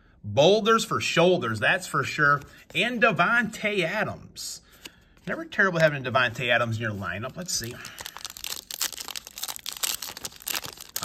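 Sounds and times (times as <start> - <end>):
wrapper tearing and crinkling: 7.4 - 11.0.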